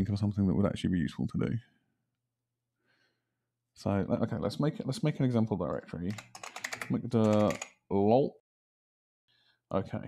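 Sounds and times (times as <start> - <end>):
typing on computer keyboard: 6.1 - 7.8.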